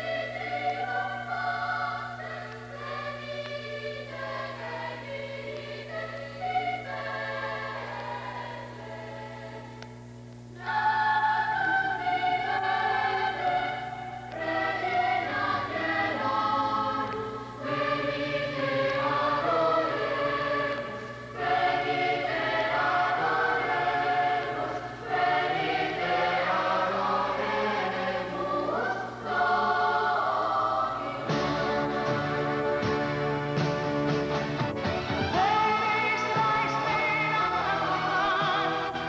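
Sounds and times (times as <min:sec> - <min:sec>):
voices singing together: 0:00.0 - 0:39.0
live band music: 0:31.3 - 0:39.0.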